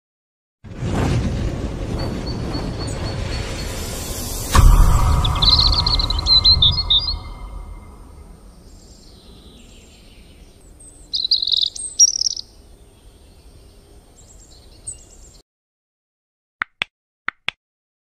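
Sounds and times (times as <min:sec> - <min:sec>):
low rumble: 0:00.7 - 0:08.8
small birds chirping: 0:08.6 - 0:15.4.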